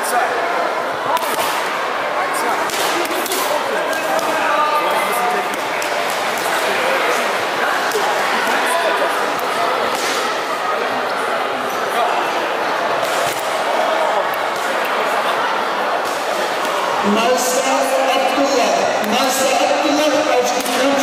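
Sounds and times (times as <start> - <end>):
crowd babble: 0.0 - 21.0.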